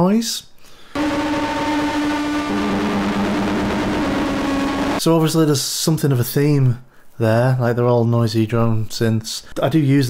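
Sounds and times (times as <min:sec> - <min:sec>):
lower synth tone: 0:01.0 - 0:05.0
synth steady tone: 0:01.0 - 0:05.0.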